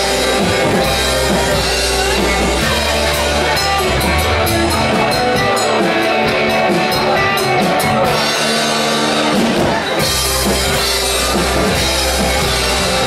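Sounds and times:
bass guitar: 0:00.0 - 0:13.0
drum kit playing: 0:00.0 - 0:13.0
electric guitars: 0:00.0 - 0:13.0.

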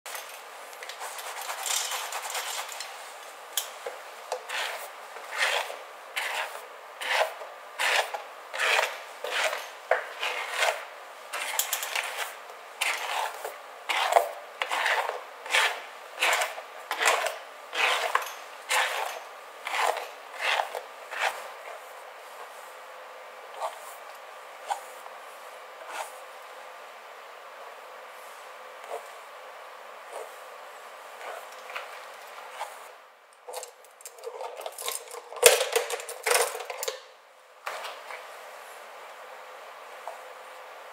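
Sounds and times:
brush rasping through wet hair: 0:00.8 - 0:03.2, 0:04.4 - 0:21.8.

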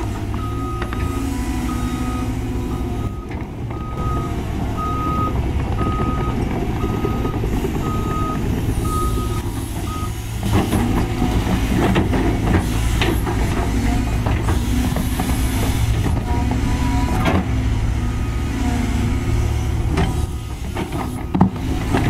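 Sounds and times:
excavator diesel engine rumble: 0:00.0 - 0:22.0
reversing alarm beeping: 0:00.3 - 0:10.3.

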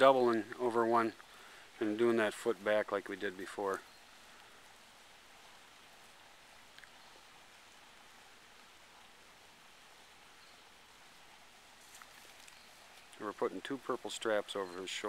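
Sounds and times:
faint outdoor air hiss: 0:00.0 - 0:15.0.

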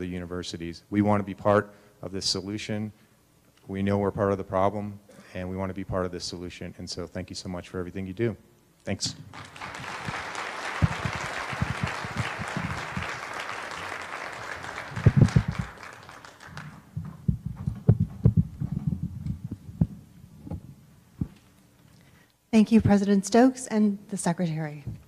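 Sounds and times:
audience applauding: 0:09.3 - 0:17.0
low thumps and knocks: 0:16.9 - 0:21.4.

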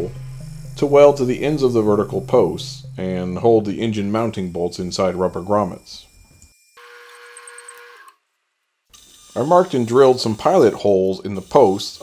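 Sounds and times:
metal lathe humming: 0:00.0 - 0:07.6.

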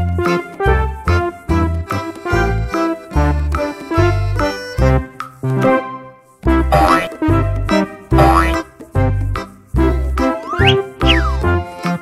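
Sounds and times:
playful background music: 0:00.0 - 0:12.0.

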